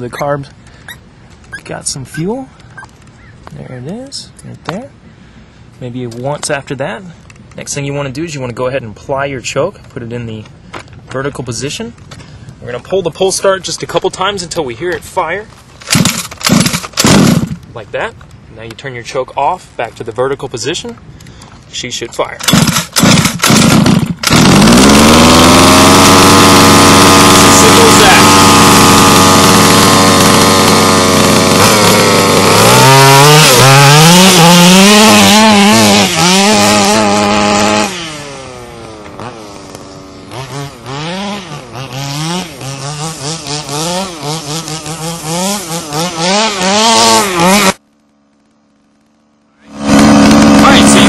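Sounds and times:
two-stroke engine revving: 15.9 - 17.6, 22.4 - 47.8, 49.6 - 51.0.

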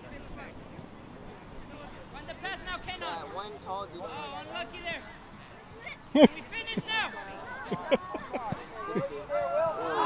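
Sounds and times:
people calling out: 3.0 - 10.0.

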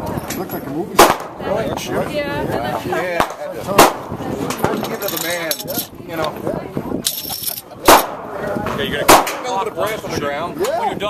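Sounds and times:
people talking: 0.0 - 11.0
gunshot with echo: 1.0 - 1.4, 3.2 - 4.1, 7.9 - 8.3, 9.1 - 9.5.

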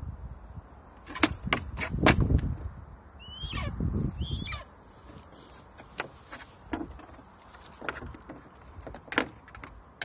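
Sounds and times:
eagle high-pitched calls: 3.2 - 4.7.

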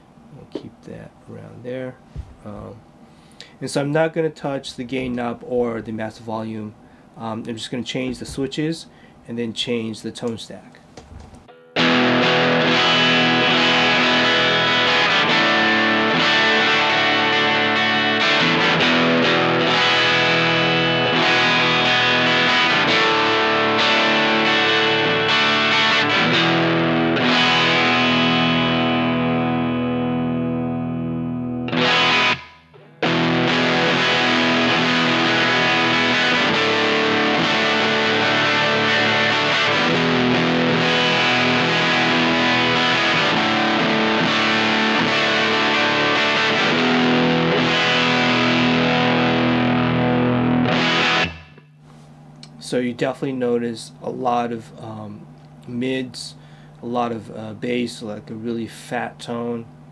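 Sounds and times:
overdriven electric guitar: 11.2 - 51.8.

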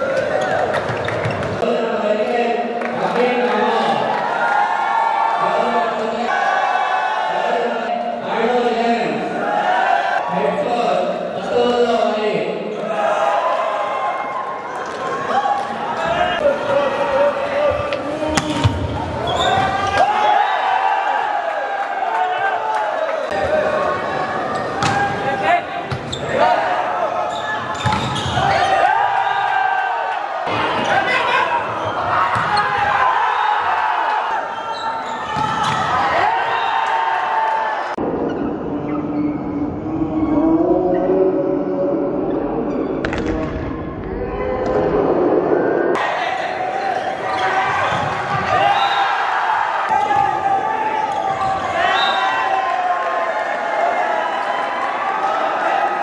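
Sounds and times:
players and spectators shouting: 3.0 - 38.0, 45.9 - 56.0.

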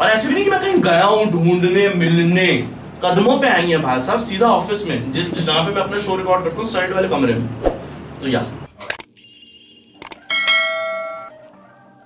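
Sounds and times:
quick clicks: 10.0 - 10.2
bright bell chime: 10.3 - 11.4.

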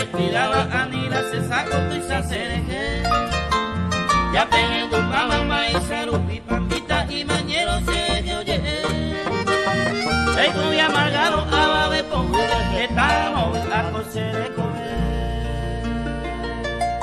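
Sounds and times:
acoustic guitars playing: 0.0 - 17.0.

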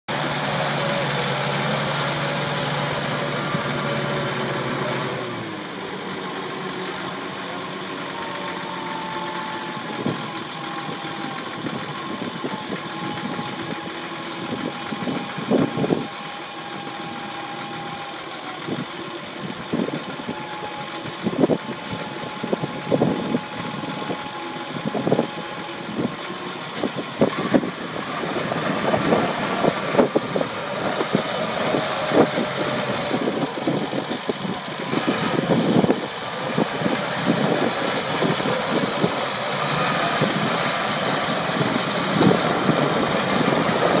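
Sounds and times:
diesel engine running: 0.0 - 44.0.

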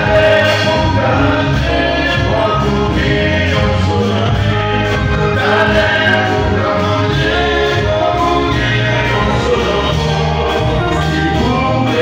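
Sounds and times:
electric guitars: 0.0 - 12.0
male vocal group singing in harmony: 0.0 - 12.0
steady bass line: 0.0 - 12.0.

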